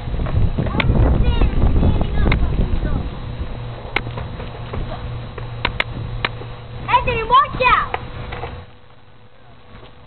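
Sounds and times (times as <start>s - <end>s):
skateboard wheels rolling on asphalt: 0.0s - 10.0s
sharp skateboard clicks: 5.6s - 6.4s.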